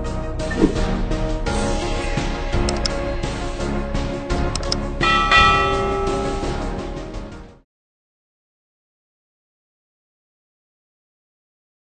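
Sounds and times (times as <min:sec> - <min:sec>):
background music: 0:00.0 - 0:07.6
quick clicks: 0:02.7 - 0:03.0, 0:04.5 - 0:04.8.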